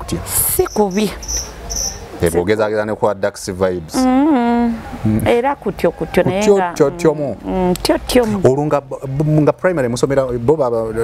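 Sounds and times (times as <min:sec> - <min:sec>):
insect chirping: 0:00.6 - 0:02.2.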